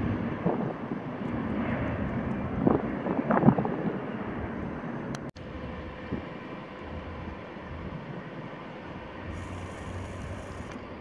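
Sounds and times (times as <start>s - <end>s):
turboprop engines droning: 0.0s - 11.0s.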